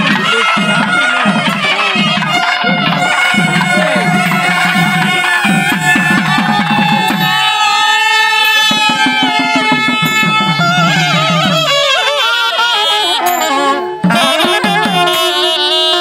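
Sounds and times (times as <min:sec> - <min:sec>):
barrel drums fast rhythm: 0:00.0 - 0:15.6
saxophones and reed pipes melody: 0:00.0 - 0:16.0.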